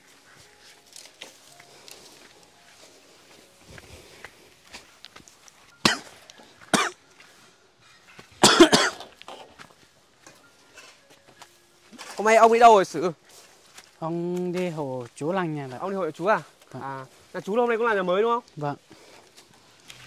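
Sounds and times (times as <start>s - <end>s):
person coughing: 5.8s - 7.0s, 8.4s - 9.5s.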